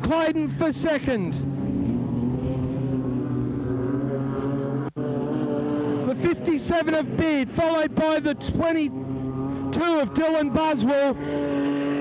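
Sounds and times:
sprint car engine droning: 0:00.0 - 0:12.0.

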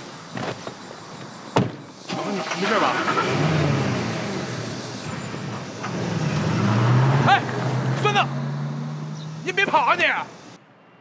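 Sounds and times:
car engine revving: 0:02.1 - 0:10.6.

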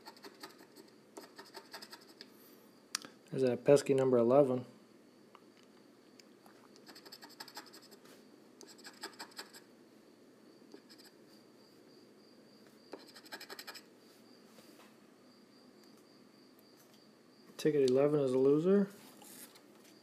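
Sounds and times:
lottery ticket being scratched: 0:00.0 - 0:02.2, 0:06.8 - 0:08.0.

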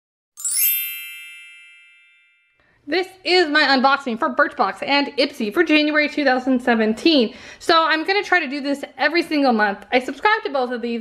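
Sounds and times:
bright shimmering chime: 0:00.4 - 0:02.6.

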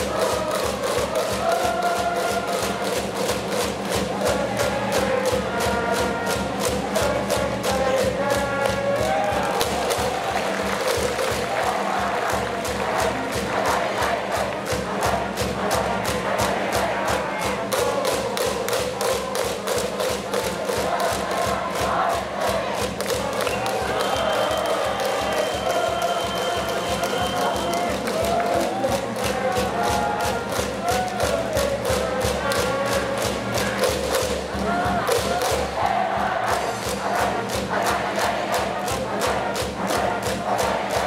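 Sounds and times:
crowd chanting: 0:00.0 - 0:41.0
drum beaten steadily: 0:00.0 - 0:41.0
band music: 0:20.5 - 0:36.1.

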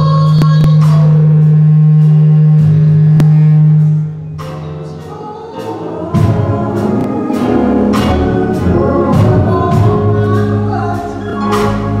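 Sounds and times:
woman singing through microphone: 0:00.0 - 0:01.4, 0:05.0 - 0:12.0.

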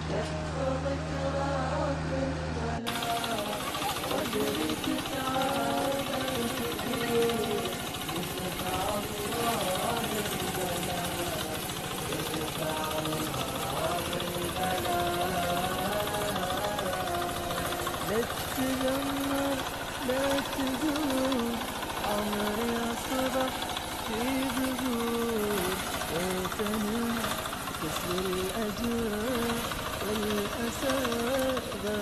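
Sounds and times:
song with sung vocal: 0:00.0 - 0:32.0
fast rattling pulse: 0:02.9 - 0:32.0.

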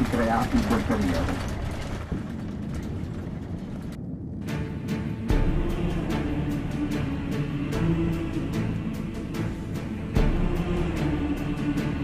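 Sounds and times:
coach engine and tyre rumble: 0:00.0 - 0:12.0.

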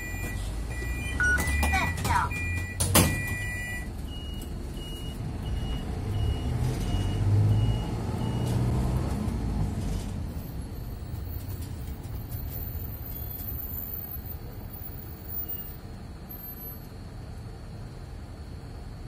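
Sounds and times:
short electronic beeps: 0:00.0 - 0:08.5
bus engine revving: 0:00.0 - 0:13.9.

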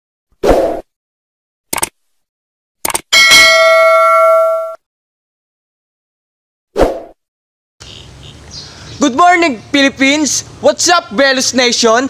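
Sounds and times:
quick double clicks: 0:01.7 - 0:02.0, 0:02.8 - 0:03.1
ringing bell ding: 0:03.2 - 0:04.8.

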